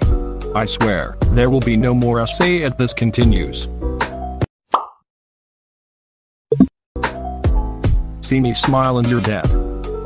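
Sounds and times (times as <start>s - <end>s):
background music: 0.0s - 4.5s, 7.0s - 10.0s
cartoon plop sound effect: 4.7s - 5.0s, 6.5s - 6.7s.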